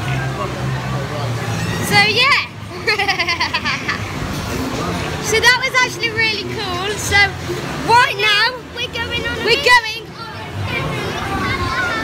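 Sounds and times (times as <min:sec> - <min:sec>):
boy giggling: 0:02.7 - 0:04.1.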